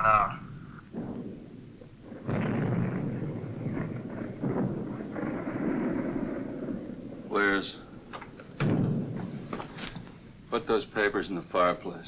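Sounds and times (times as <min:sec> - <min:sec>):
artillery shells exploding: 0:00.0 - 0:11.8.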